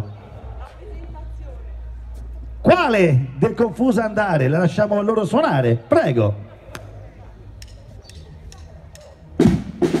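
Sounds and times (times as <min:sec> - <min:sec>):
drumming burst: 0:09.4 - 0:10.0
loud drum strike: 0:09.4 - 0:10.0.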